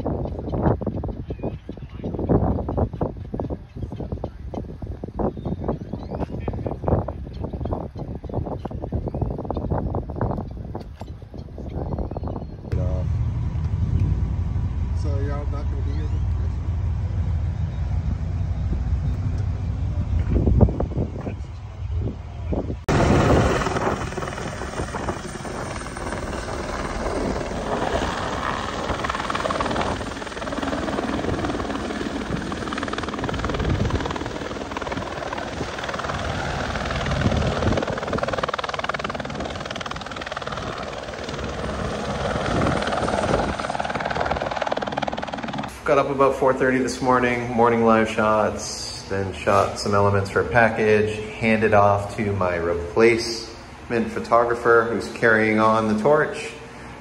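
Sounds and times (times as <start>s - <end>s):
helicopter flying overhead: 0.0s - 57.0s
low rumble: 12.7s - 45.7s.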